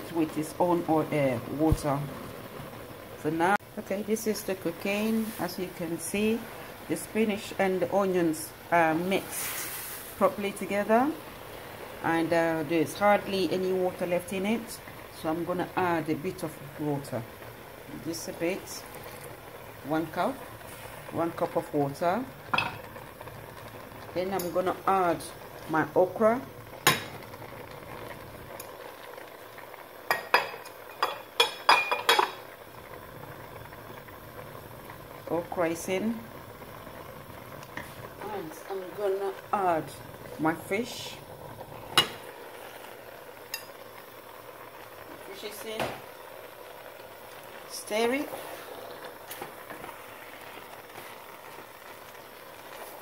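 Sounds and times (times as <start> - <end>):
stew bubbling in a pot: 0.0 - 53.0.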